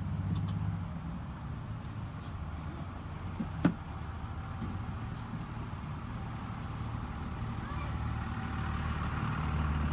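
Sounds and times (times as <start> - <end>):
vehicle engine rumbling: 0.0 - 9.9.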